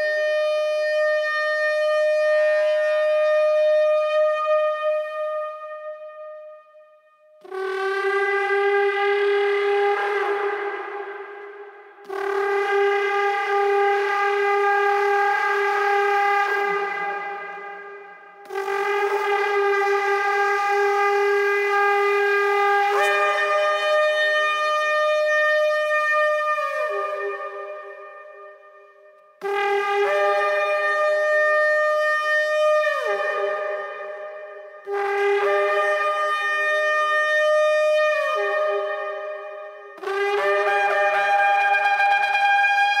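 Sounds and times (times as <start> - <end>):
shofar blasts: 29.4 - 43.0.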